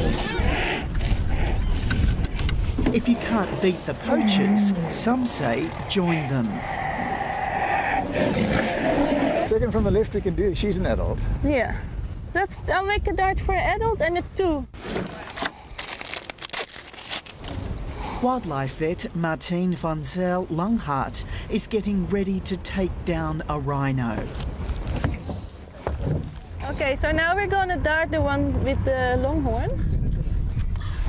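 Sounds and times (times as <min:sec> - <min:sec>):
crinkling handling noise: 0:14.8 - 0:17.9.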